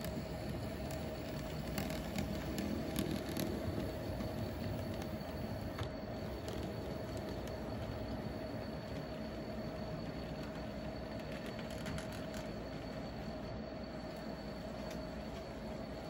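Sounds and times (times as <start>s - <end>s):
model train motor whine: 0.0s - 13.4s.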